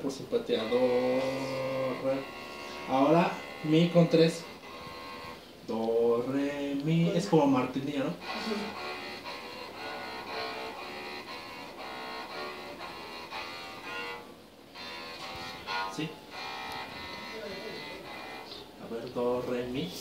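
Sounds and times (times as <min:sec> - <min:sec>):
electric cello bowed notes: 0:00.0 - 0:20.0.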